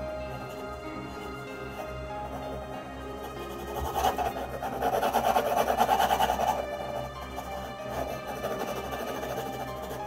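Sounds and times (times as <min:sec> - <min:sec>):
pencil scratching on paper: 0:00.0 - 0:10.0
soft background music: 0:00.0 - 0:10.0.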